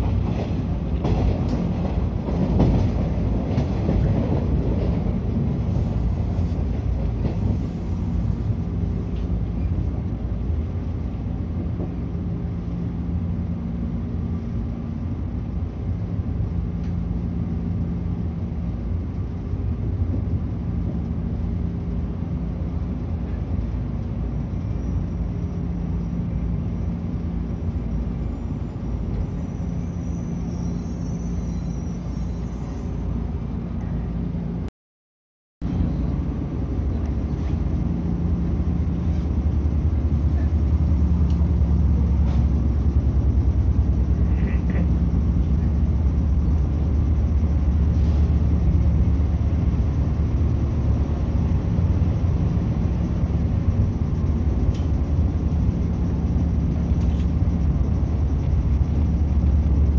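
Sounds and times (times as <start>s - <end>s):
train wheels rumbling on rail: 0.0s - 34.7s, 35.6s - 59.9s
steady low hum: 35.6s - 59.9s.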